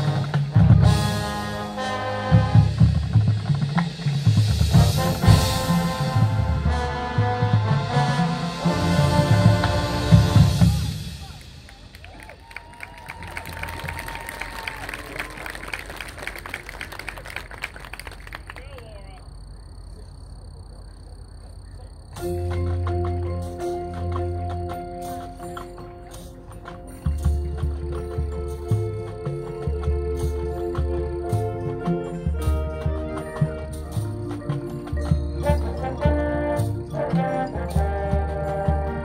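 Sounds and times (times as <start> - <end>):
low drums: 0.0 - 14.9, 22.0 - 39.0
marching band brass: 0.0 - 18.5, 22.2 - 39.0
audience applauding: 11.4 - 19.2.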